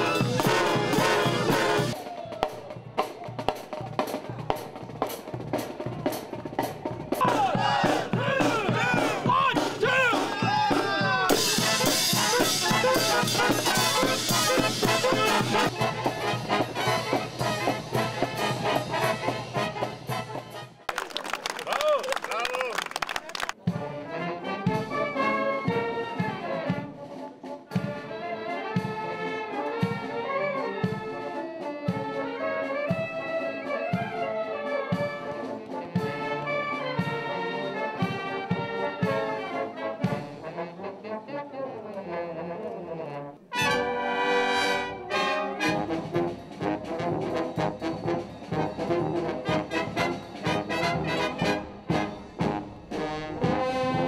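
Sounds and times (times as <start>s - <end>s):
military brass band march: 0.0s - 21.4s, 22.2s - 54.0s.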